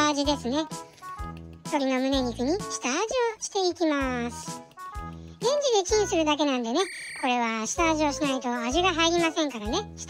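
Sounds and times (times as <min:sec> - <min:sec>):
high-pitched person narrating: 0:00.0 - 0:10.0
low background music: 0:00.0 - 0:10.0.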